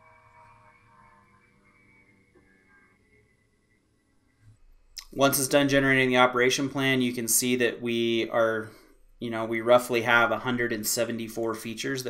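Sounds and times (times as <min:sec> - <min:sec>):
faint steady tones: 0:00.0 - 0:12.0.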